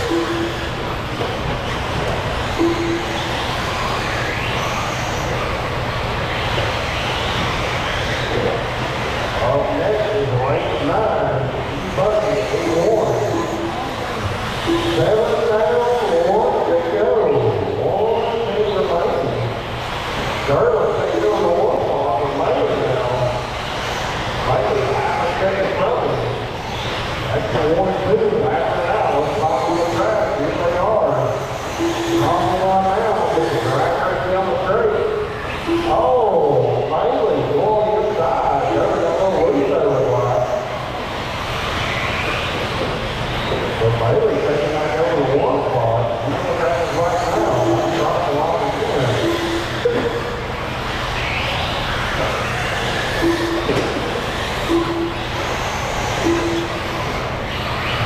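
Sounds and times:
indistinct talking: 0.0 - 58.0
rc cars humming: 0.0 - 58.0.

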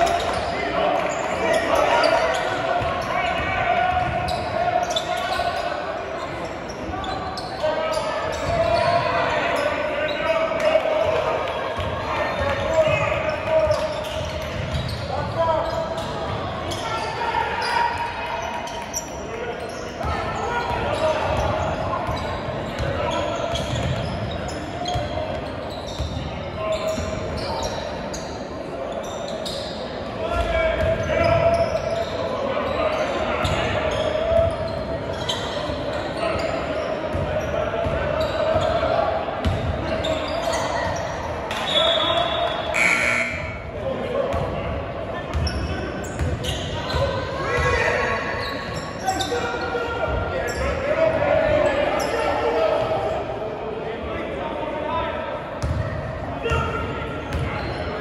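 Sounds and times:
murmur of voices: 0.0 - 58.0.

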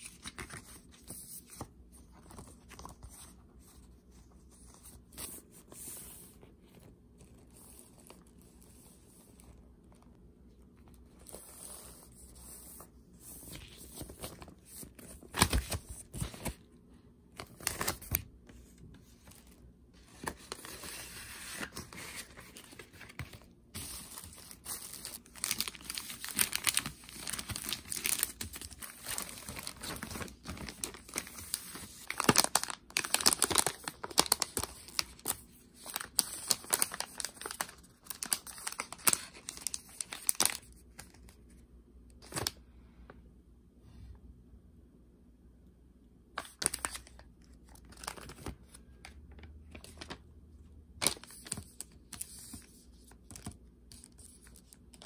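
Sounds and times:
plastic packaging crinkling: 20.2 - 41.1.

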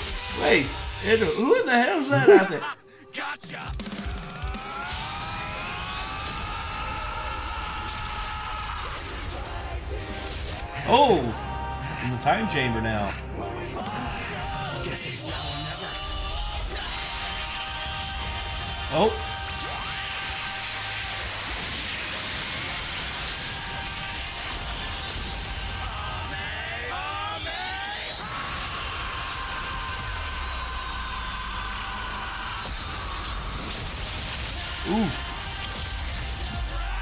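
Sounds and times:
music: 0.0 - 37.0
energy blasts and clashing: 4.4 - 10.9, 16.0 - 37.0.

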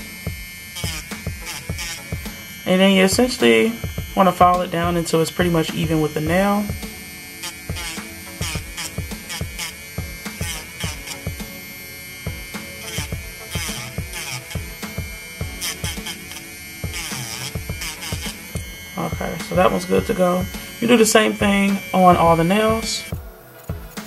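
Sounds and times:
electric nail drill whining: 0.0 - 24.0
sanding band grinding nail: 0.0 - 24.0.

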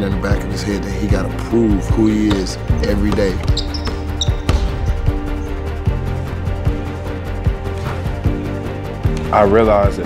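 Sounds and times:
background music: 0.0 - 10.0
basketball bouncing on wooden floor: 2.3 - 4.9.

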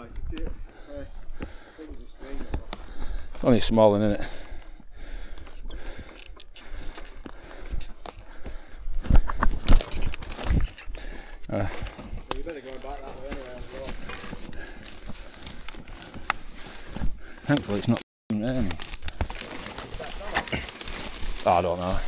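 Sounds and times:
rustling undergrowth: 0.0 - 22.0.

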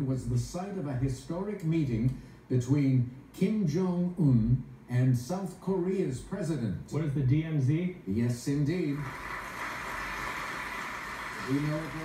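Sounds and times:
studio audience applauding: 8.9 - 12.0.

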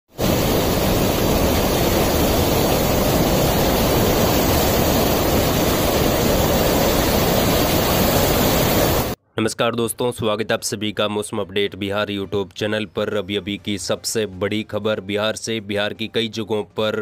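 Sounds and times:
flood water rushing: 0.2 - 9.2.

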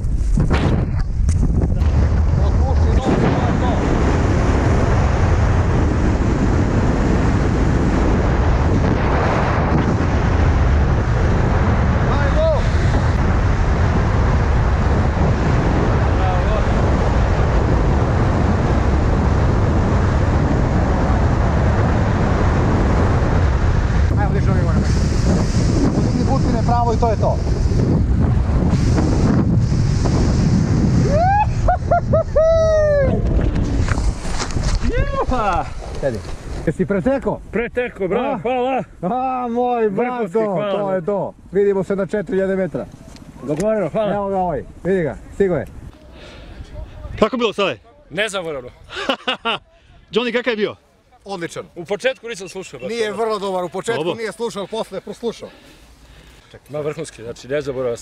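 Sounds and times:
wind rushing over microphone: 0.0 - 50.5.

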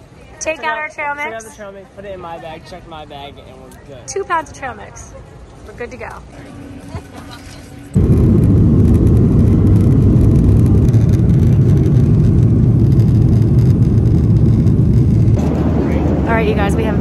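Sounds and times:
jet engine rumble in cabin: 6.9 - 17.0.

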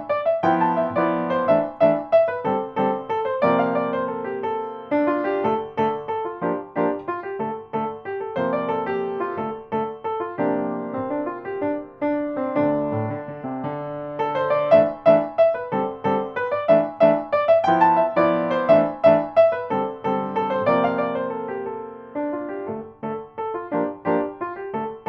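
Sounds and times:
solo piano hornpipe: 0.0 - 25.0.

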